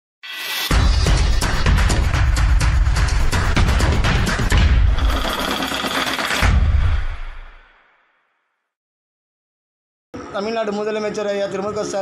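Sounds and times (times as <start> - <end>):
percussive hits over deep bass: 0.7 - 5.0.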